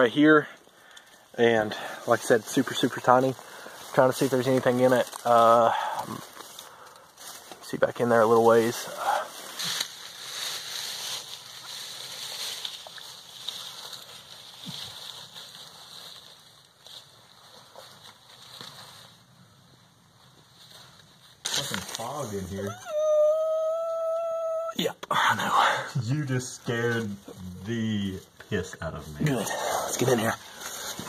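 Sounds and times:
rustling of dry leaves and dirt: 0.0 - 24.7, 25.6 - 31.0
person yelling: 22.5 - 25.0.

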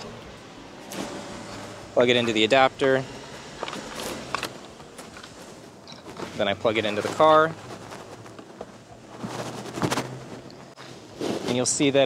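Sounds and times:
steady low hum: 0.0 - 11.2
microphone rustle: 3.1 - 11.9.

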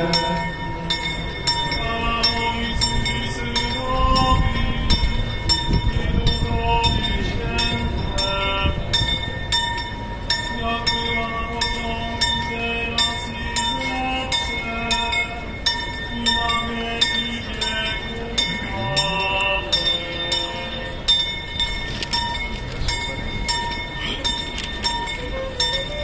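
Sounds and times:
church bells pealing: 0.0 - 26.0.

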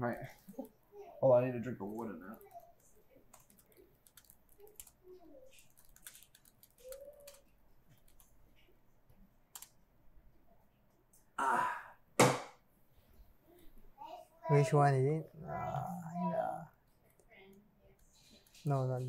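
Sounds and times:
laptop keyboard typing and clicking: 3.2 - 8.3, 9.5 - 9.7.

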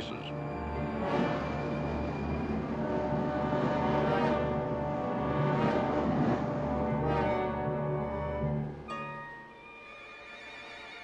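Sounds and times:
orchestral music with brass chords: 0.0 - 11.0.

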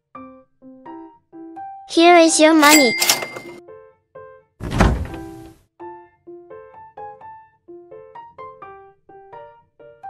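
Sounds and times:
soft piano music: 0.0 - 2.6, 3.4 - 10.0
toy refrigerator door opening: 2.7 - 3.6, 4.6 - 5.5.

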